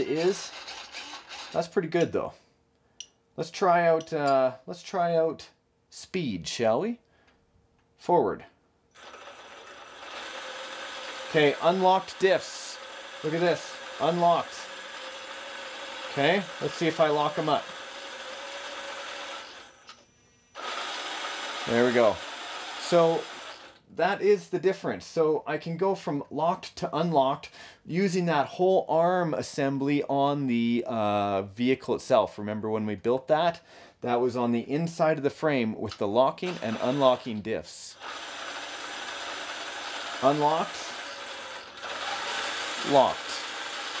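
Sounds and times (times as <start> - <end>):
toy truck motor whirring: 0.0 - 1.7, 9.0 - 23.8, 36.5 - 37.3, 38.0 - 44.0.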